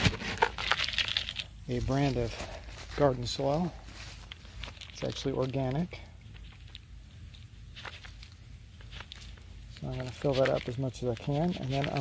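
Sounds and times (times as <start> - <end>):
plastic scoop digging soil: 0.0 - 12.0.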